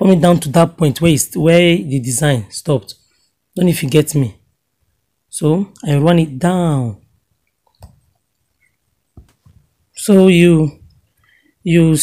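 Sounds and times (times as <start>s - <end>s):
fabric handling noise: 9.1s - 9.8s.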